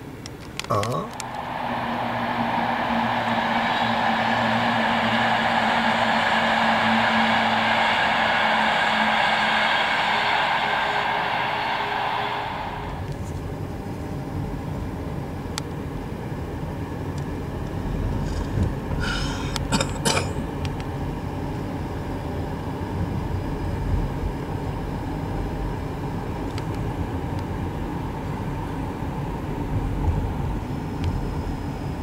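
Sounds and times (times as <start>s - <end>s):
faint motor whine: 0.0s - 32.0s
train wheels on rails: 0.6s - 13.9s, 18.1s - 20.4s
low rumble: 1.0s - 14.3s.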